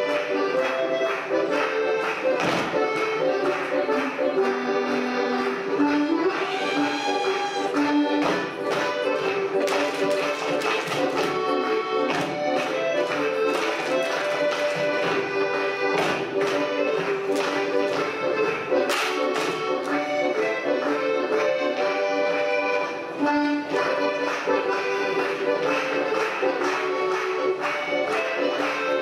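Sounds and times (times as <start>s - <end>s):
dancers tapping and clapping: 0.0s - 21.8s, 23.5s - 29.0s
accordion folk dance music: 0.0s - 29.0s.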